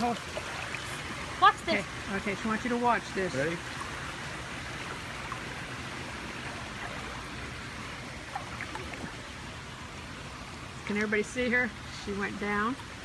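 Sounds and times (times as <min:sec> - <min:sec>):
pool water rushing: 0:00.0 - 0:13.0
small water splashes: 0:00.0 - 0:13.0.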